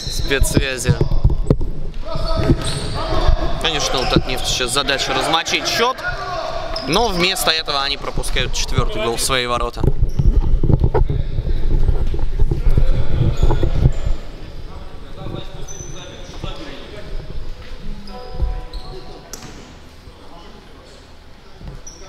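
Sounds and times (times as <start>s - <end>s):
players' voices: 0.0s - 9.9s, 11.0s - 22.0s.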